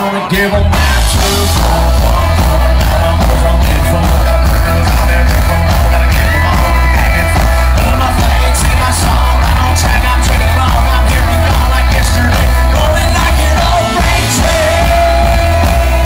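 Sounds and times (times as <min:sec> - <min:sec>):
live country band: 0:00.0 - 0:16.0
man singing lead vocal: 0:00.0 - 0:16.0.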